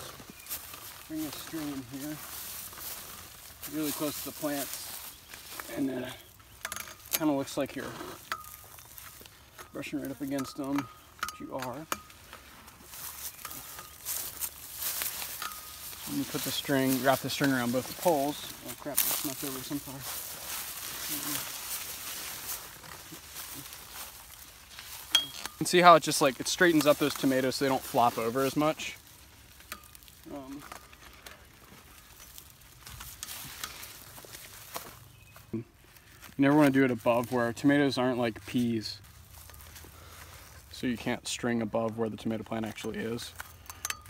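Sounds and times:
footsteps on straw: 0.0 - 6.3, 7.6 - 10.8, 12.1 - 43.4
leaves rustling: 0.0 - 43.6.

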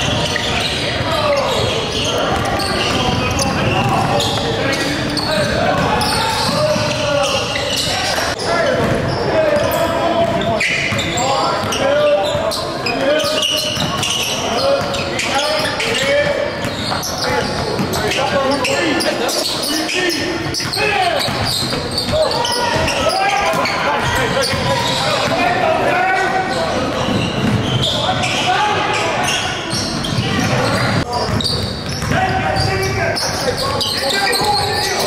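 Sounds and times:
shouts and chatter in a gym: 0.0 - 35.0.

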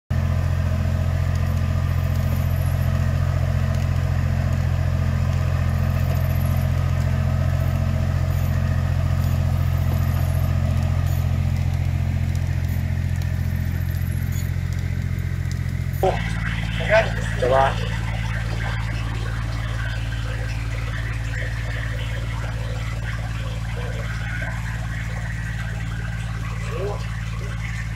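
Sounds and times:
tractor engine droning: 0.1 - 27.9.

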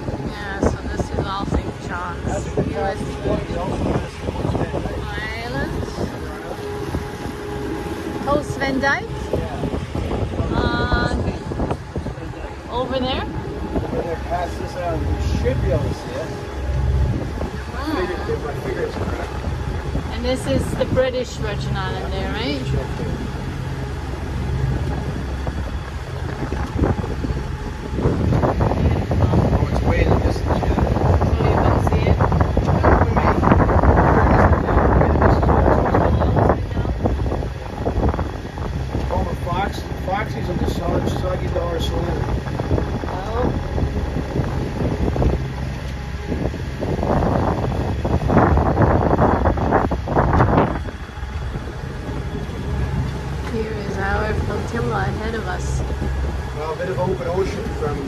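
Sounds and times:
rushing water: 0.0 - 58.0
steady low hum: 0.0 - 58.0
wind buffeting microphone: 0.0 - 58.0.

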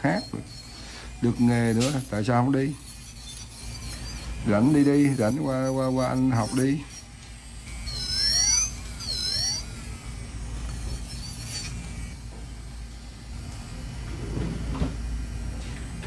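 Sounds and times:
electric nail drill whining: 0.0 - 16.0.

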